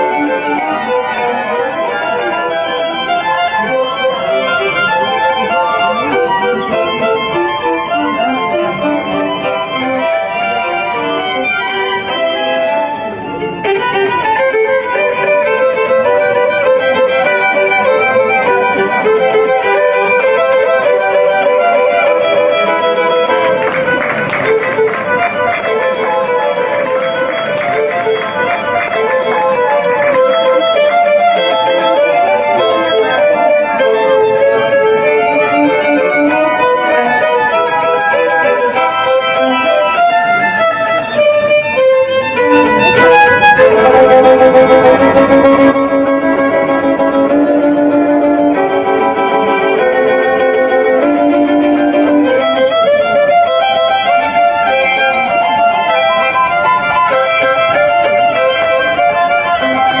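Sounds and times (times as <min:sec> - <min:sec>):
violin slow melody: 0:00.0 - 1:00.0.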